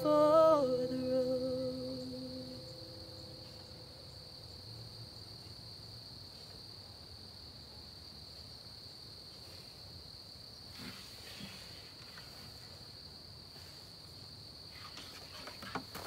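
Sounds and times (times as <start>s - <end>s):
crickets singing: 0.0s - 16.0s
brief knock or rustle: 14.8s - 16.0s.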